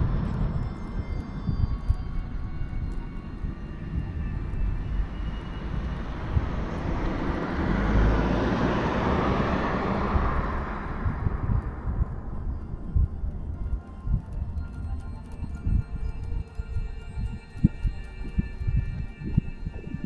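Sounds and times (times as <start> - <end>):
steady low rumble: 0.0 - 20.0
aircraft flying past: 4.8 - 12.9.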